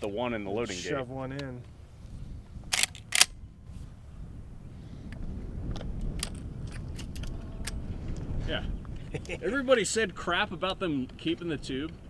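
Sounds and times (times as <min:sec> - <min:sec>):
low rumble: 0:01.7 - 0:09.5
gun handling clicks: 0:02.7 - 0:03.4, 0:05.8 - 0:07.8
shotgun shell loading click: 0:02.7 - 0:03.4.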